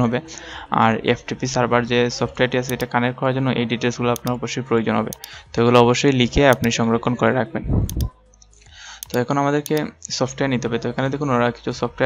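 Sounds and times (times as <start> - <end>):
man speaking: 0.9 - 7.3
computer mouse clicks: 2.7 - 2.9, 4.2 - 4.4, 5.1 - 5.4, 6.4 - 6.8, 7.9 - 9.9.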